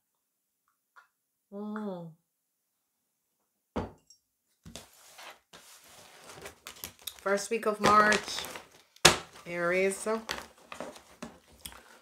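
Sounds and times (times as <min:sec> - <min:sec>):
cards snapping and rustling: 0:06.1 - 0:11.9.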